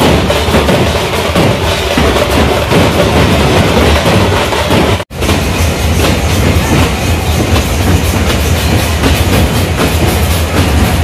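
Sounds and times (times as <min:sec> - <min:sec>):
loud music with drums and percussion: 0:00.0 - 0:11.0.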